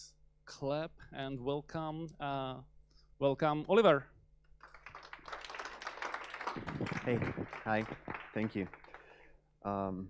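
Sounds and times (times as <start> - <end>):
audience applauding: 4.6 - 9.3.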